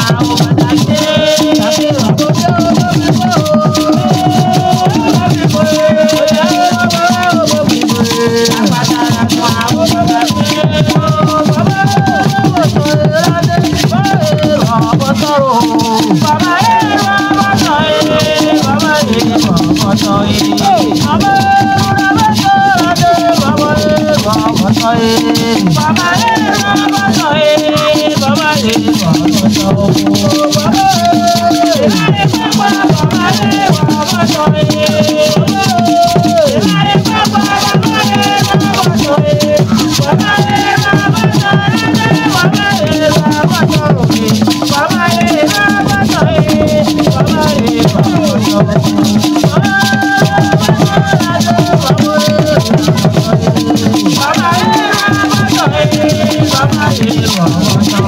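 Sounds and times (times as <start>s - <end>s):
group singing: 0.0s - 58.0s
rattles shaking: 0.0s - 58.0s.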